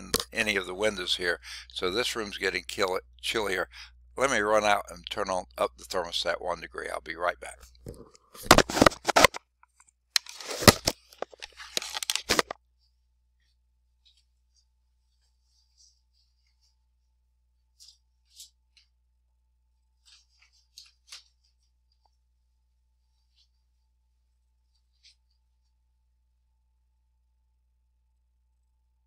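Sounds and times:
headset microphone crackling and scraping: 7.4 - 9.5, 10.2 - 12.6.

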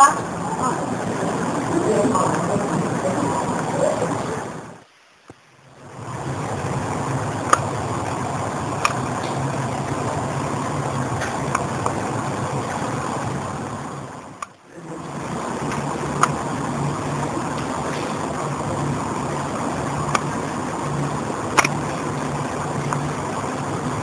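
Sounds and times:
rushing room noise with hum: 0.0 - 24.0
sharp clicks: 7.4 - 8.2, 8.8 - 9.5, 11.1 - 12.0, 21.4 - 22.2.

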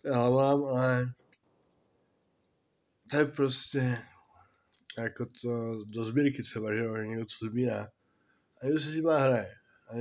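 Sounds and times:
man speaking: 0.0 - 1.3, 3.0 - 8.0, 8.6 - 10.0.

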